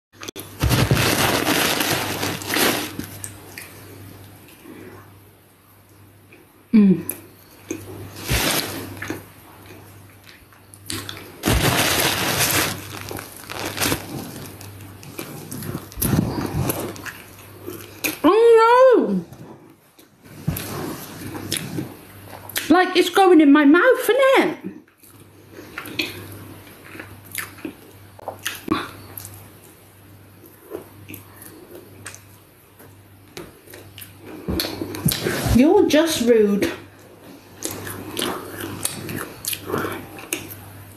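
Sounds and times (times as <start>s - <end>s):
crunchy pastry chewing: 0.2s - 5.0s, 7.4s - 18.2s, 37.4s - 40.8s.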